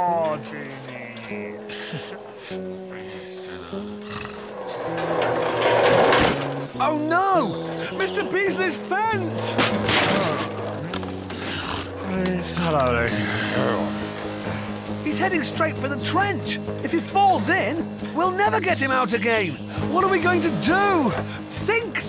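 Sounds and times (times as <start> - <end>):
cartoon background music: 0.0 - 4.6, 6.2 - 22.0
loud crash of fence: 9.6 - 10.9.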